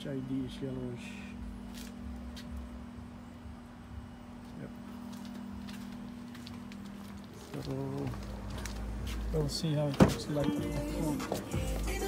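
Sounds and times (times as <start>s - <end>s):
steady low two-tone hum: 0.0s - 12.0s.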